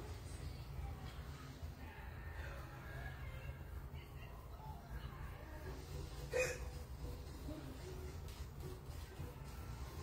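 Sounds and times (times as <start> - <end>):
person hiccuping: 6.3 - 6.8.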